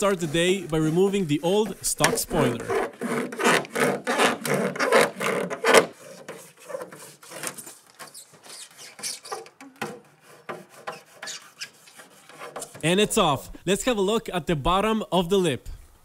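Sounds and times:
line sawing through tape: 0.0 - 12.9.

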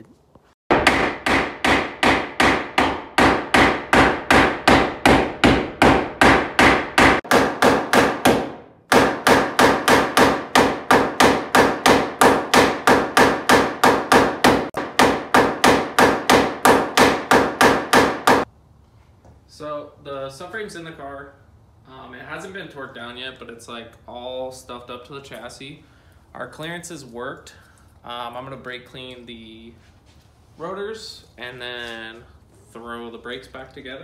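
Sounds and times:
hammer striking metal: 0.7 - 18.5.

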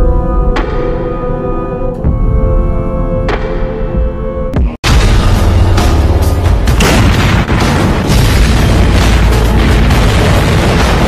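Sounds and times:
music: 0.0 - 11.0
heavy booming: 4.8 - 11.0.

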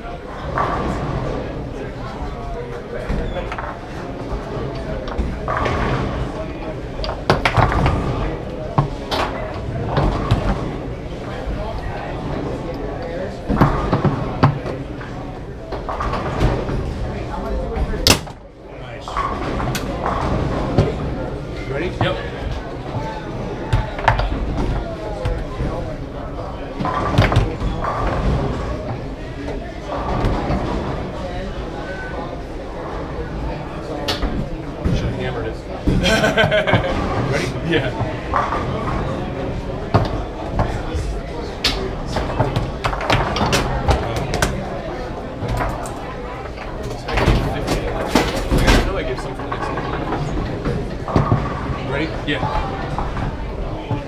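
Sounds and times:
indistinct voices murmuring: 0.0 - 54.0
foosball ball knocks and cracks: 7.0 - 10.7, 26.8 - 29.1, 41.6 - 44.6.

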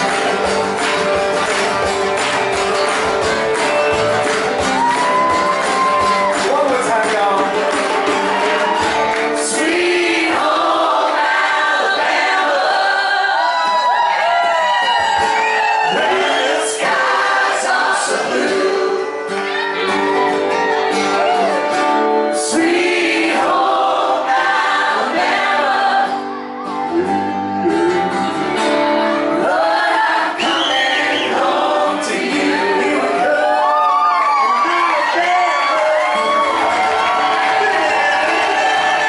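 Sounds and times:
live band with guitars: 0.0 - 39.0
many voices singing along: 8.6 - 14.4, 15.4 - 20.2, 22.3 - 39.0.

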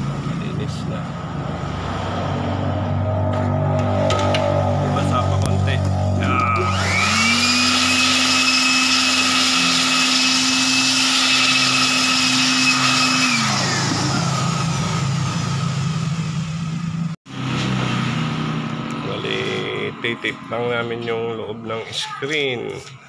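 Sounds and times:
hot-air blower whining: 2.6 - 20.0.

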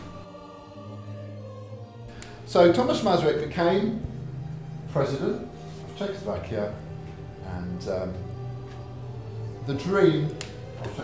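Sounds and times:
choir holding long notes: 0.0 - 11.0.

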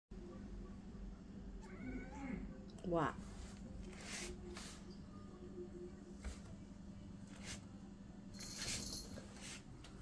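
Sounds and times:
low room hum: 0.1 - 10.0
cat meowing faintly: 1.6 - 2.6.

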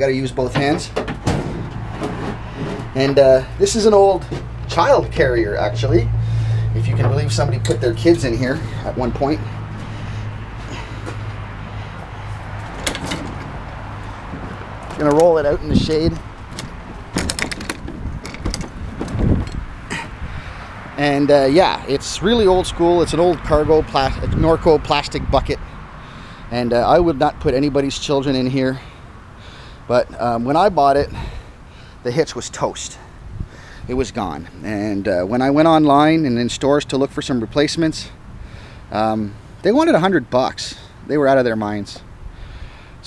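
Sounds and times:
rough scuffing noise: 10.6 - 12.8
trailer clicking and rattling on paving: 12.6 - 20.1.

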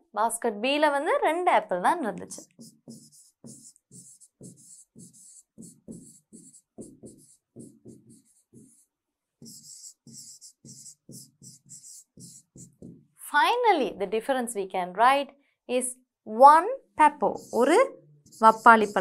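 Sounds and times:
pen scratching on paper: 2.3 - 13.2, 17.2 - 19.0.

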